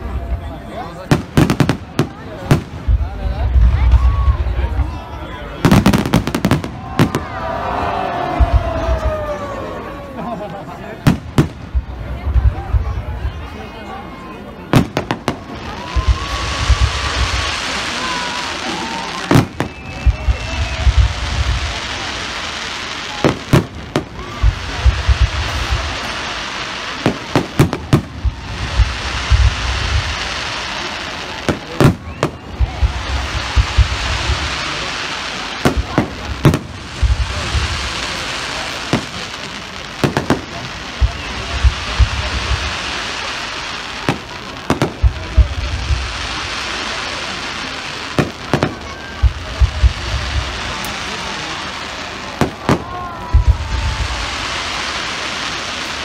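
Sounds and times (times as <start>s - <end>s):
fireworks bursting in sharp bangs: 0.0s - 56.0s
steady hiss: 0.8s - 56.0s
low booms: 1.1s - 5.0s, 19.3s - 22.1s, 27.0s - 30.5s, 35.6s - 38.2s, 40.0s - 43.0s, 52.4s - 54.8s.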